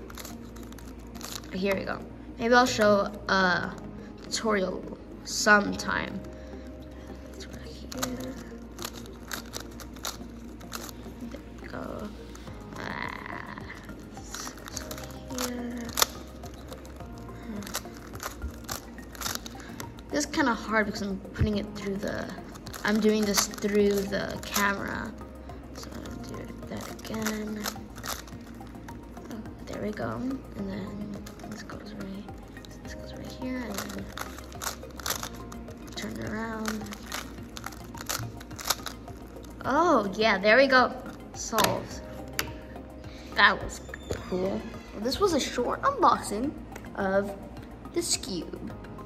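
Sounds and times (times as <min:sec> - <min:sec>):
plastic puzzle clicking: 0:00.0 - 0:01.6, 0:07.3 - 0:11.4, 0:13.8 - 0:20.4, 0:21.5 - 0:25.0, 0:25.8 - 0:28.8, 0:31.1 - 0:32.9, 0:33.6 - 0:39.7, 0:41.1 - 0:42.6
music playing: 0:00.0 - 0:49.0.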